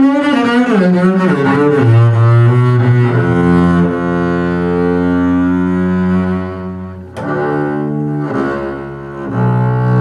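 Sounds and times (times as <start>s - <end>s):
bowed double bass notes: 0.0s - 10.0s.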